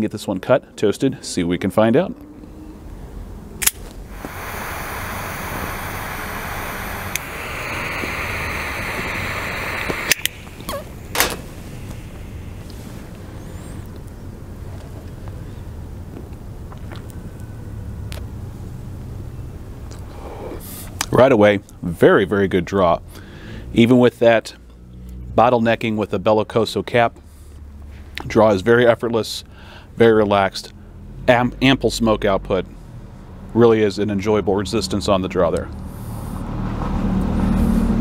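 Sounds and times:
lighter clicking off: 0:03.6 - 0:12.0
torch lighter hissing: 0:03.6 - 0:13.2.

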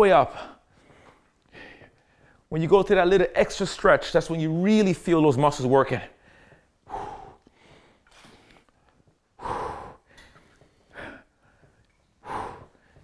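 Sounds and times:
man exhaling forcefully: 0:09.4 - 0:10.1, 0:12.2 - 0:13.0.

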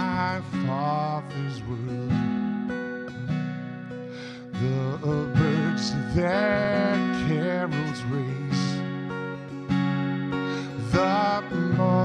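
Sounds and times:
man singing a hymn: 0:00.0 - 0:02.2, 0:04.6 - 0:08.8, 0:10.7 - 0:12.0
acoustic guitar strumming: 0:00.0 - 0:12.0.

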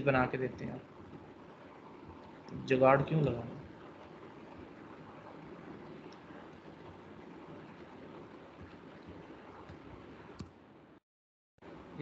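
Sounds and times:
faint steady hiss: 0:00.0 - 0:10.6.

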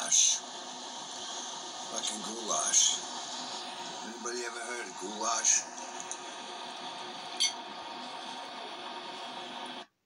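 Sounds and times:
background hiss and hum: 0:00.0 - 0:10.0.

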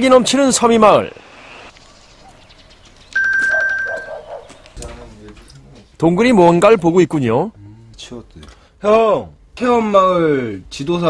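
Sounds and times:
bell-like ding: 0:03.2 - 0:04.1.

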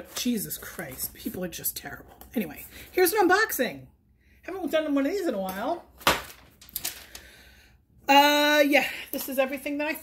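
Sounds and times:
paper crackling and rustling: 0:06.0 - 0:07.2.

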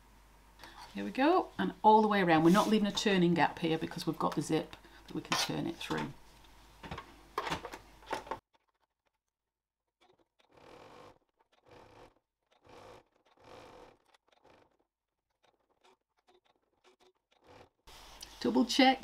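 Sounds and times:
sewing machine stitching: 0:10.0 - 0:17.9.

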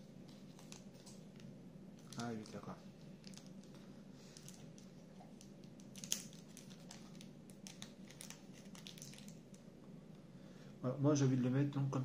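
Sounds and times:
plastic bag crinkling: 0:02.0 - 0:09.6.

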